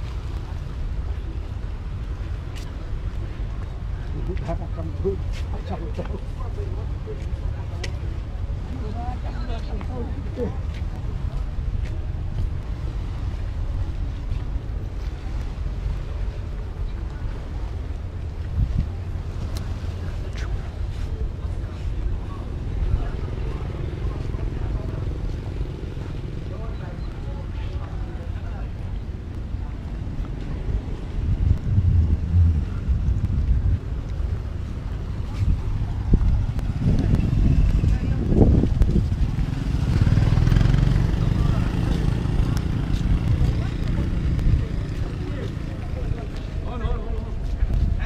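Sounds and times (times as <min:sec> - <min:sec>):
wind buffeting microphone: 0:00.0 - 0:48.0.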